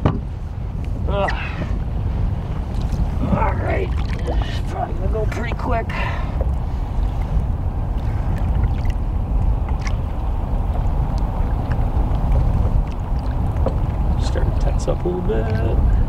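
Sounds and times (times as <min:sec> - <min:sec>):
water rumbling against boat: 0:00.0 - 0:16.0
light water splashes: 0:02.6 - 0:16.0.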